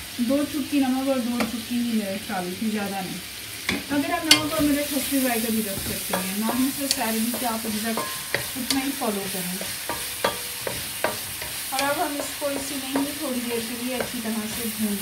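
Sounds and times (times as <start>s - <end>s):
sizzle of frying in oil: 0.0s - 15.0s
wooden spoon scraping a pan: 3.7s - 15.0s.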